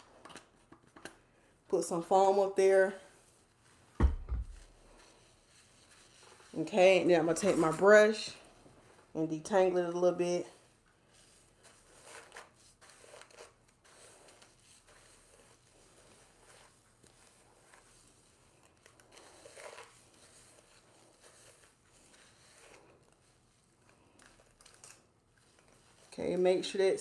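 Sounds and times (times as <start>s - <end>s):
brush scratching through hair: 4.5s - 24.6s, 25.4s - 27.0s.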